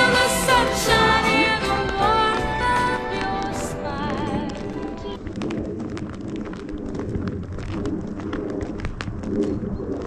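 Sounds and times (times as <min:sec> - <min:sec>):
footsteps crunching on snow: 0:01.4 - 0:10.0.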